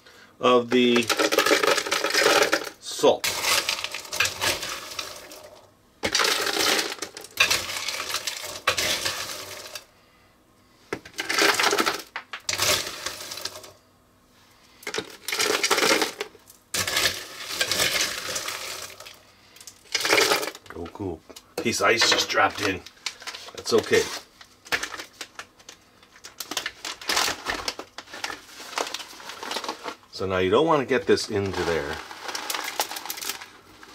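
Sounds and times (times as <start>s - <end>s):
ice cubes clattering into bucket: 0.7s - 9.9s, 11.1s - 13.8s, 14.8s - 20.9s, 21.6s - 30.1s, 31.1s - 33.9s.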